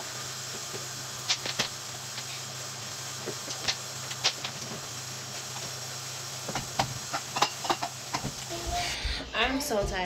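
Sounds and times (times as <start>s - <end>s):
steady hiss: 0.0s - 9.3s.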